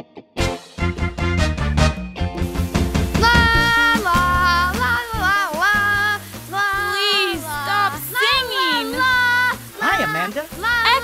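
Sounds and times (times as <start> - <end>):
light backing music: 0.4 - 11.0
cartoonish puppet voice singing: 3.2 - 11.0.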